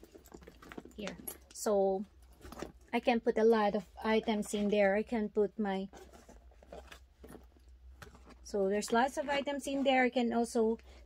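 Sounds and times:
rustling inside a handbag: 0.0s - 11.0s.

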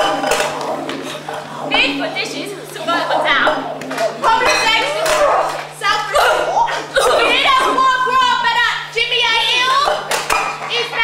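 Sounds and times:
steady low hum: 0.0s - 11.0s
voices talking over one another: 1.4s - 10.0s.

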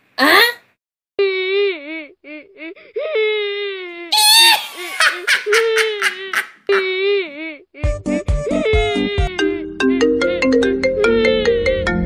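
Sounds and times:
cat crying sobs and wail: 1.3s - 9.7s.

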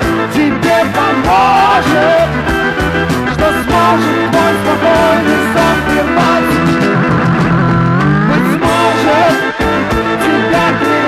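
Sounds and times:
instrumental rock music: 0.0s - 11.0s
tones gliding upward: 3.6s - 9.3s.

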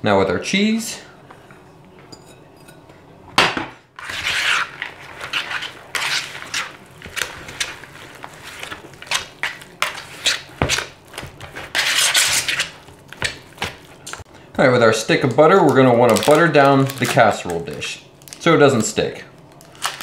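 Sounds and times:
whisk scraping bowl: 4.0s - 12.9s.

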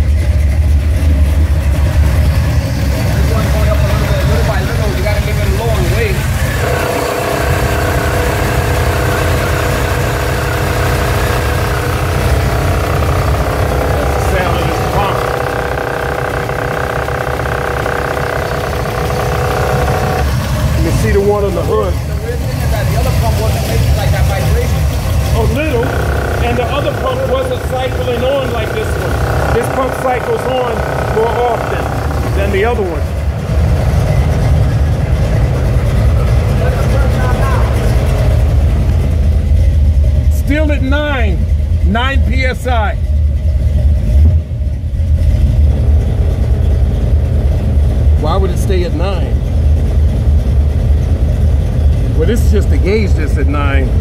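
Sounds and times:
car engine idling: 0.0s - 54.0s
high-pitched hum: 3.2s - 22.4s, 23.0s - 39.1s.

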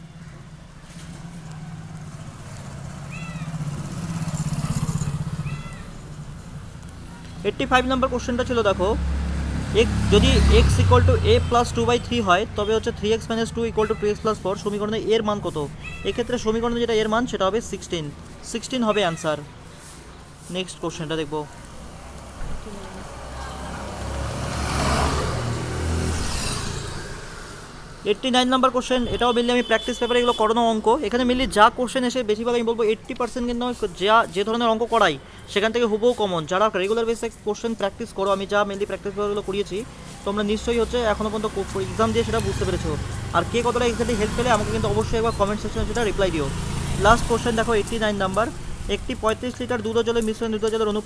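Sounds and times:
vehicle engine passing: 0.9s - 18.3s, 19.7s - 28.3s, 32.5s - 51.0s.

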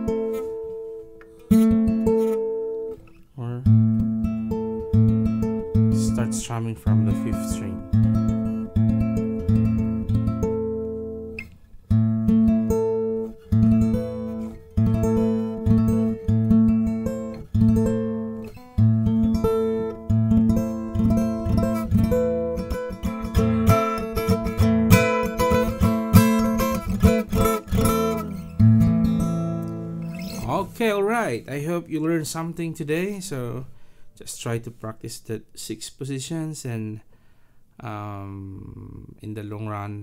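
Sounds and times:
acoustic guitar strumming: 0.0s - 33.1s.

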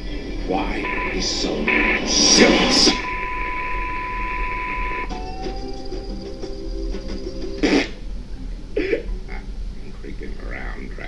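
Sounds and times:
pitched musical notes: 0.6s - 8.0s
steady test-tone beep: 0.7s - 6.8s.

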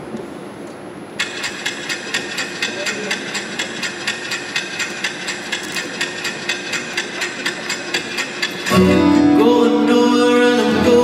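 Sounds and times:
rhythmic ticking: 1.2s - 11.0s.

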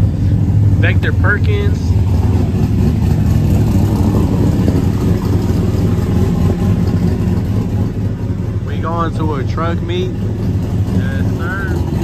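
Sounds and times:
truck engine idling: 0.0s - 12.0s.

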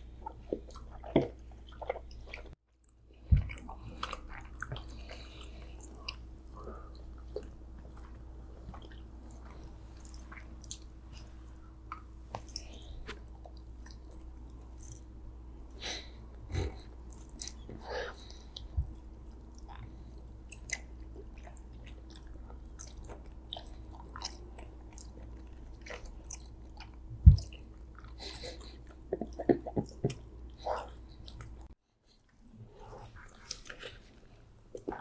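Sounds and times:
faint steady hum: 0.0s - 35.0s
chewing gummy candy: 0.2s - 15.1s, 17.0s - 35.0s.

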